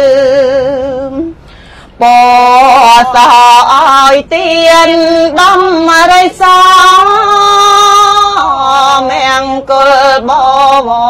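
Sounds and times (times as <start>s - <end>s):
woman chanting: 2.0s - 11.0s.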